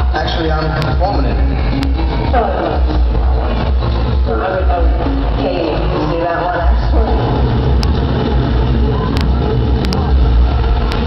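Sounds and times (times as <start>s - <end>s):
car engine rumble over loudspeakers: 0.0s - 11.0s.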